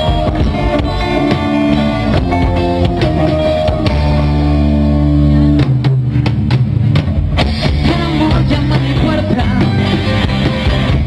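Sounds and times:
electric guitars and bass chord: 0:00.0 - 0:11.0.

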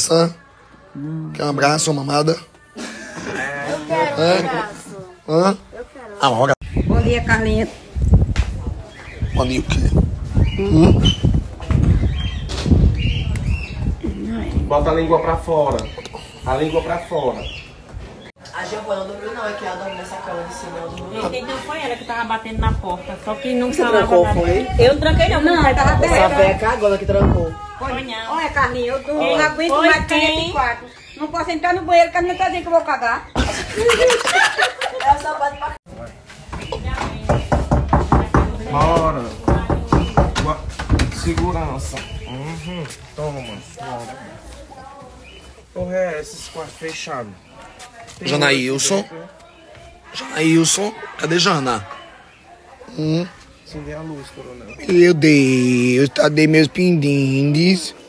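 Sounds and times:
voices: 0:00.0 - 0:58.0
microphone rubbing against clothing: 0:06.6 - 0:14.7.

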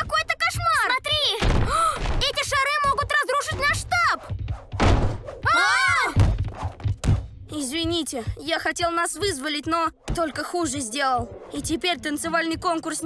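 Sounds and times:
background music: 0:00.0 - 0:13.0
cartoon heavy thuds: 0:01.4 - 0:02.4, 0:04.7 - 0:05.3
wordless vocal cries: 0:05.4 - 0:06.2.

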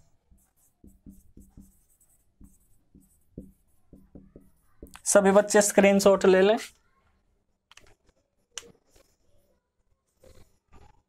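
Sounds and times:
marker writing on whiteboard: 0:00.0 - 0:06.0.

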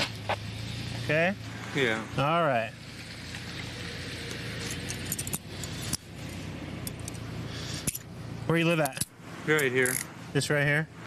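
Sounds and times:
steady background noise: 0:00.0 - 0:11.0
metal handcuffs clinking: 0:04.5 - 0:06.1, 0:06.8 - 0:08.1, 0:08.8 - 0:10.1.

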